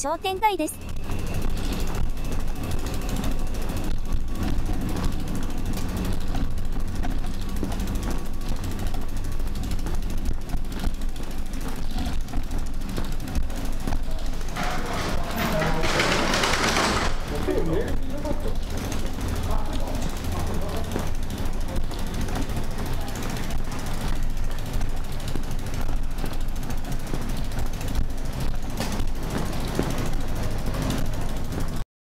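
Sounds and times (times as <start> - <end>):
bicycle rattling over paving: 0.8 - 31.8
freewheel clicking: 0.8 - 31.8.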